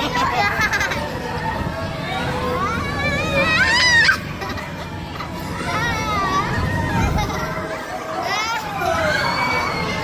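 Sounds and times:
children's voices: 0.0s - 10.0s.

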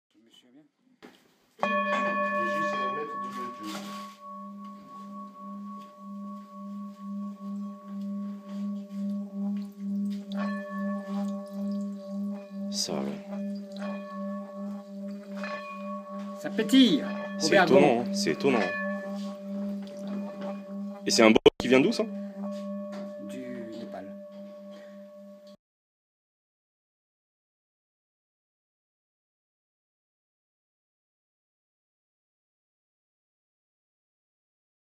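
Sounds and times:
singing bowl struck: 1.6s - 25.6s
singing bowl rubbed humming: 1.7s - 25.6s
water faintly crackling: 7.4s - 16.4s.

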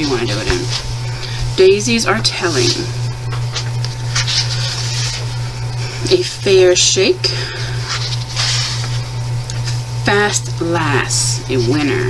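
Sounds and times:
paper page turning: 0.0s - 1.4s, 2.2s - 5.4s, 7.8s - 9.8s
steady low hum: 0.0s - 12.0s.

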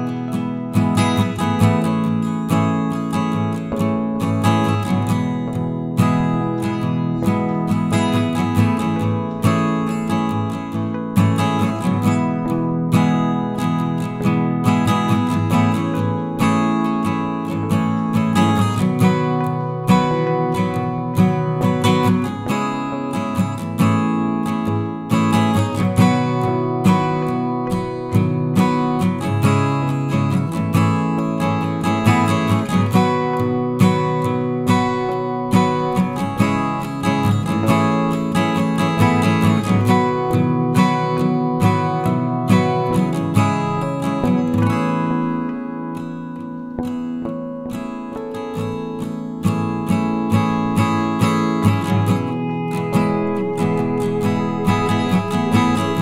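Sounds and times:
strummed acoustic guitar: 0.0s - 56.0s.

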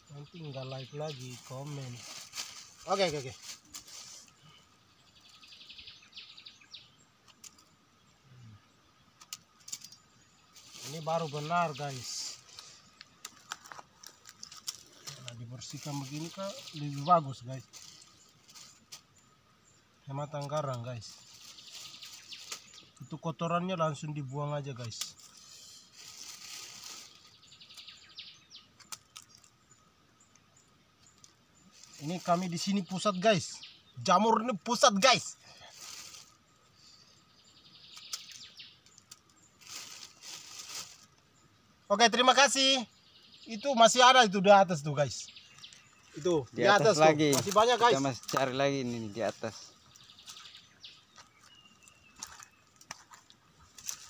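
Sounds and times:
hands rustling dry leaves: 0.6s - 4.5s, 10.5s - 19.2s, 20.1s - 23.2s, 24.8s - 29.5s, 31.1s - 37.0s, 37.8s - 41.3s, 44.0s - 54.0s.

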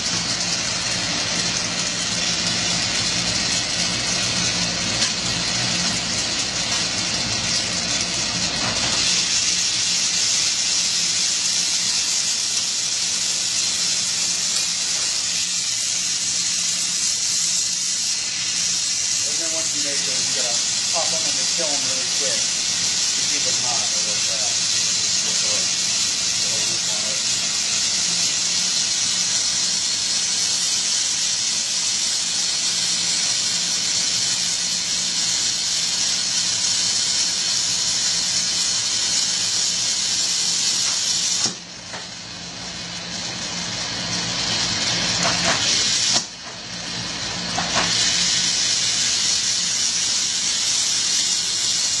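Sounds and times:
torch flame hissing: 0.0s - 52.0s.

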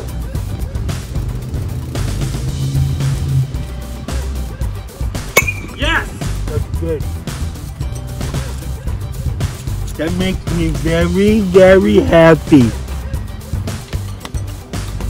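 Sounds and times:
background music: 0.0s - 15.0s
bat hitting baseball: 5.2s - 6.4s.

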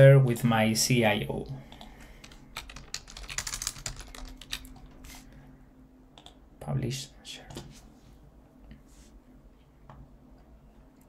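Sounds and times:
computer keyboard typing: 1.7s - 5.0s.

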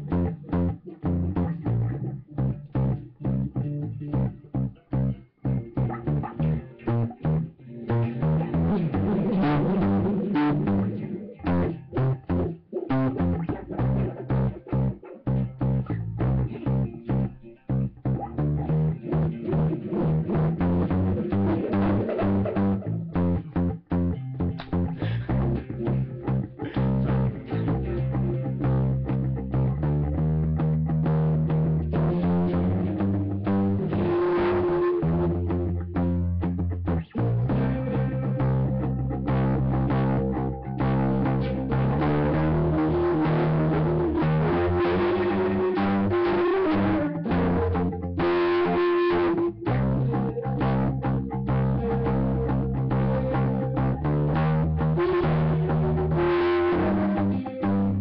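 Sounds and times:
guitar notes: 0.0s - 58.0s
low bass line: 0.0s - 58.0s.

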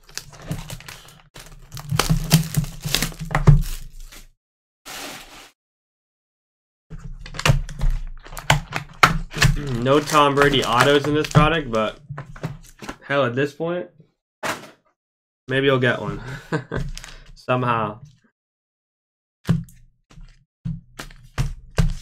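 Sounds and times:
plastic wrap crackling: 0.0s - 4.1s, 8.2s - 12.0s.

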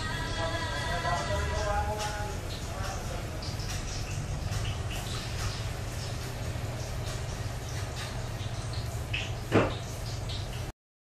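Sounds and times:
oil bubbling and crackling: 0.0s - 10.7s
steady low hum: 0.0s - 10.7s
loud knock: 9.5s - 9.8s.

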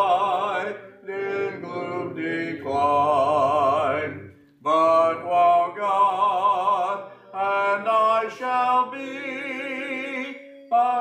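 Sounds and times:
a cappella hymn singing: 0.0s - 11.0s.

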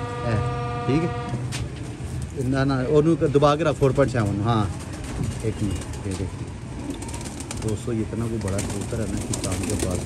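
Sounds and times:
steady horn-like note: 0.0s - 1.5s
men talking: 2.4s - 4.8s, 7.6s - 10.0s.

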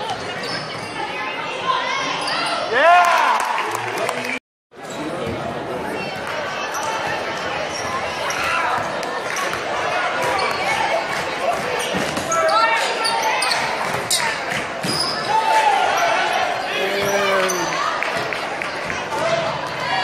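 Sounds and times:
shouting voices: 15.3s - 18.0s.

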